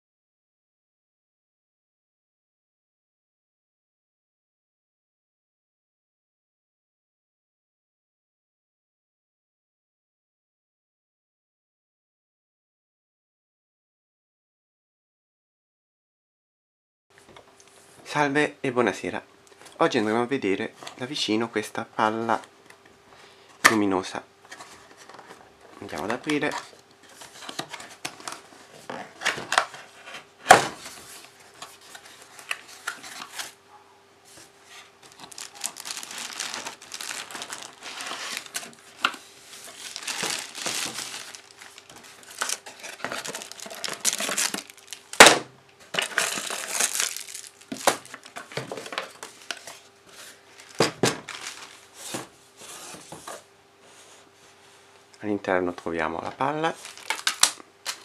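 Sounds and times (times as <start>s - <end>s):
plastic bag crinkling: 35.0s - 45.3s, 45.9s - 49.8s, 50.5s - 52.1s, 56.7s - 58.0s.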